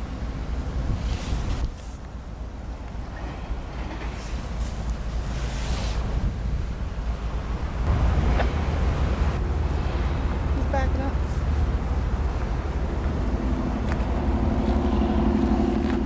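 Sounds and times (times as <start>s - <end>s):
diesel locomotive engines rumbling: 0.0s - 16.0s
wind buffeting microphone: 0.2s - 16.0s.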